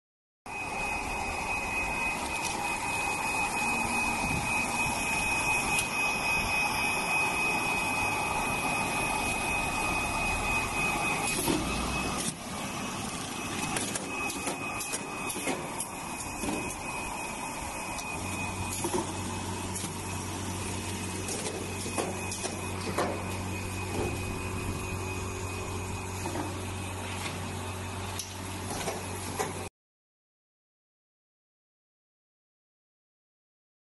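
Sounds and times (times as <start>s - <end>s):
high constant whine: 0.5s - 29.7s
seeding machine running: 0.8s - 29.6s.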